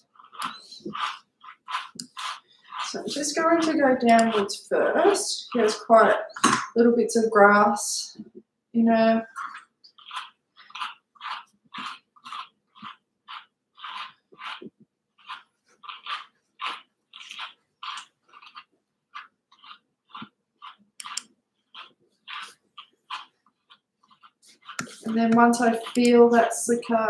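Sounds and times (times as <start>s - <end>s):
brush rasping through fur: 0.0s - 6.2s, 9.4s - 26.9s.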